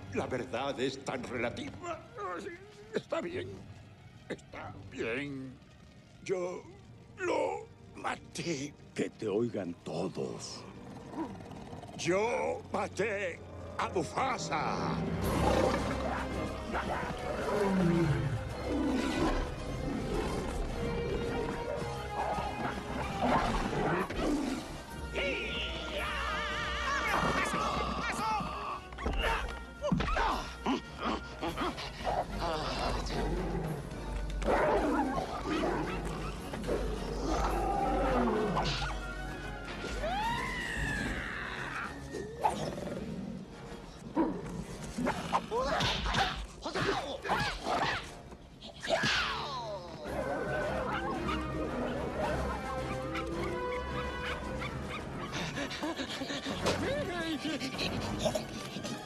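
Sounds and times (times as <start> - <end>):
dramatic film music: 0.0 - 59.0
lions roaring: 10.4 - 12.7, 14.9 - 25.0, 31.1 - 45.5.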